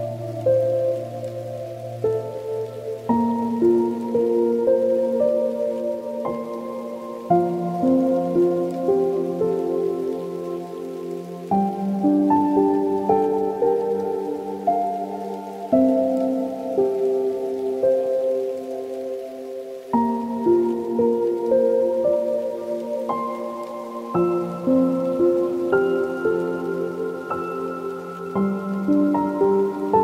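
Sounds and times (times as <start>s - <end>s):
faint steady hiss: 0.0s - 30.0s
soft solo piano: 0.0s - 30.0s.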